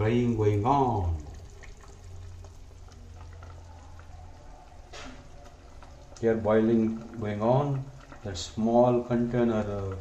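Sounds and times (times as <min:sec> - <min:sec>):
curry bubbling in a pot: 0:00.0 - 0:10.0.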